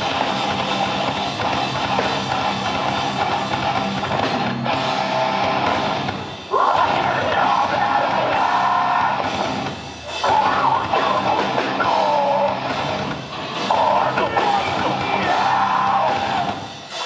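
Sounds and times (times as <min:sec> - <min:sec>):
bass guitar: 0:00.0 - 0:17.0
drum kit: 0:00.0 - 0:17.0
electric guitars: 0:00.0 - 0:17.0
person singing: 0:06.5 - 0:09.4, 0:10.0 - 0:12.7, 0:13.6 - 0:16.6.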